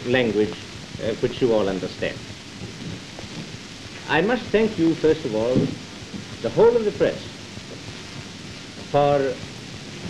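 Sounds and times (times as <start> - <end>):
man speaking: 0.0 - 2.2, 4.1 - 5.8, 6.4 - 7.4, 9.0 - 9.4
film recording hiss and crackle: 0.0 - 10.0.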